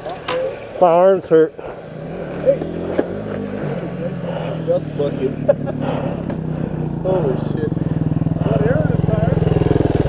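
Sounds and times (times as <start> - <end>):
dirt bike engines idling: 0.0 - 10.0
bursts of laughter: 3.7 - 8.1.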